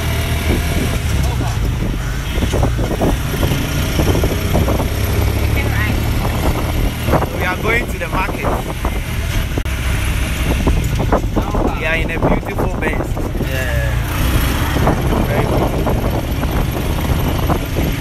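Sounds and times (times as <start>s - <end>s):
road and wind noise: 0.0s - 18.0s
voices: 0.8s - 3.6s, 4.6s - 9.0s, 11.2s - 16.1s.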